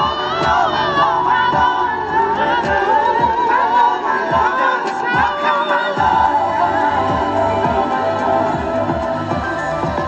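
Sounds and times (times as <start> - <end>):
voices singing together: 0.0 - 10.0.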